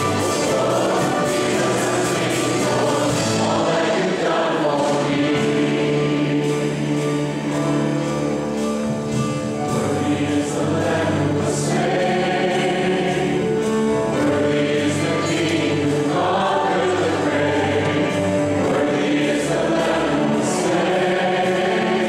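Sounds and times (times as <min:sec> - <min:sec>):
congregation singing a hymn: 0:00.0 - 0:22.0
held bass notes: 0:00.0 - 0:22.0.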